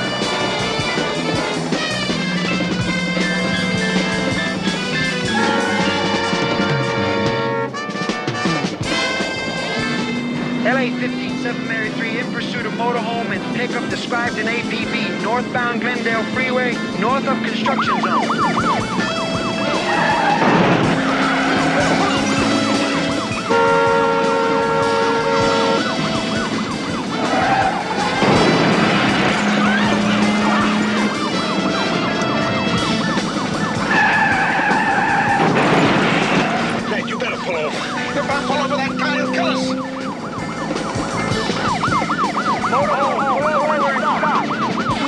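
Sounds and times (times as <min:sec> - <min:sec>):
siren wailing: 0:00.0 - 0:07.6, 0:09.2 - 0:35.6, 0:36.2 - 0:45.0
dramatic orchestral music: 0:00.0 - 0:45.0
speeding vehicles: 0:00.0 - 0:45.0.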